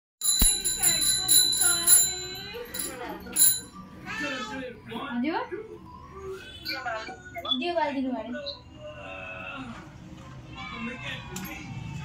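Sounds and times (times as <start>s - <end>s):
small metal hand bell ringing: 0.2s - 3.8s.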